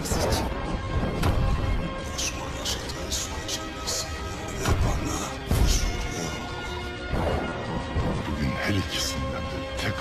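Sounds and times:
dramatic trailer music: 0:00.0 - 0:10.0.

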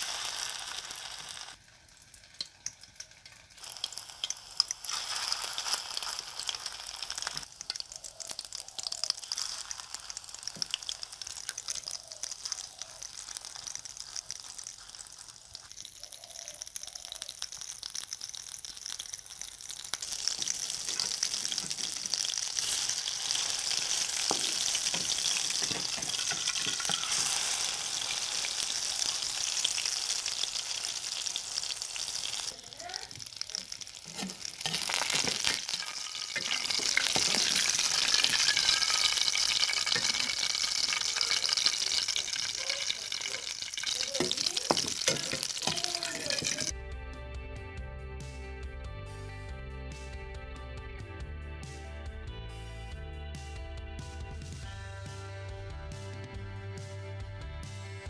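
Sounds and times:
fish patties sizzling in oil: 0:00.0 - 0:46.7
spoon scraping and clicking on pan: 0:23.9 - 0:27.6, 0:34.1 - 0:42.3, 0:43.6 - 0:46.7.

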